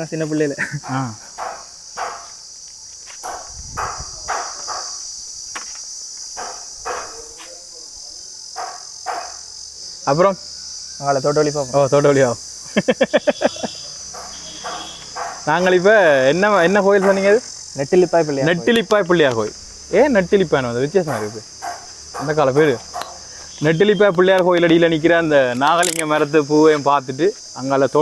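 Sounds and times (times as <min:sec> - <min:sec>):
high-pitched insect chorus: 0:00.0 - 0:28.0.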